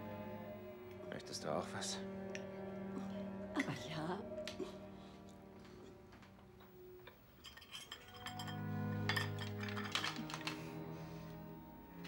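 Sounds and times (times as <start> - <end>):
low sustained music notes: 0.0 - 12.0
cutlery clinking on plates: 7.1 - 10.4.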